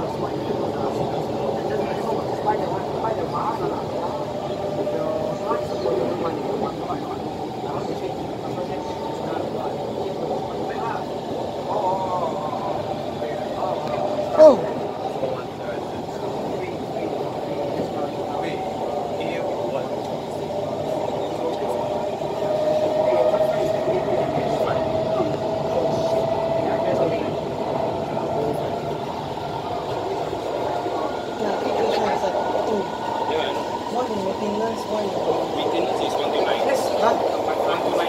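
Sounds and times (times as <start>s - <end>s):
train wheels rumbling on rail: 0.0s - 38.0s
train whine rising in pitch: 11.7s - 38.0s.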